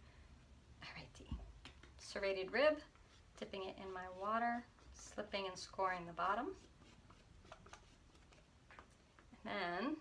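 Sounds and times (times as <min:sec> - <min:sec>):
tool scratching wet clay: 0:01.8 - 0:09.0.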